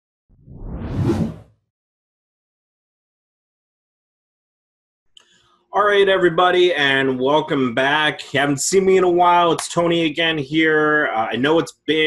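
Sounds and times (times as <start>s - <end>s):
rising whoosh: 0.3s - 1.5s.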